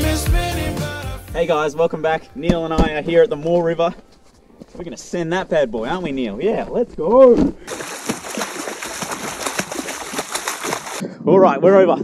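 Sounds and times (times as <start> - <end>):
water splashing and sloshing: 7.5 - 11.0.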